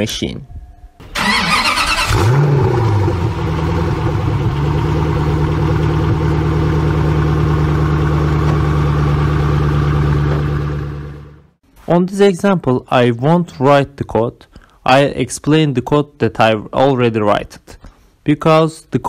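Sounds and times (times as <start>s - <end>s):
car engine starting and idling: 1.0s - 11.6s.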